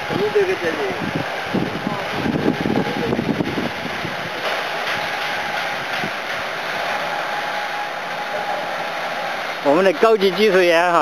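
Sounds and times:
water jet hissing onto gravel: 0.0 - 11.0.

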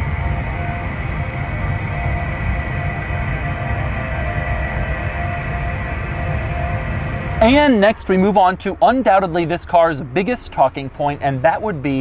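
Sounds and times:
steady synthetic hum: 0.0 - 12.0.

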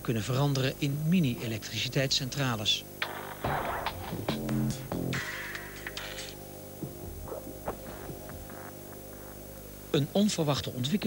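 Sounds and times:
low droning hum: 6.4 - 11.0.

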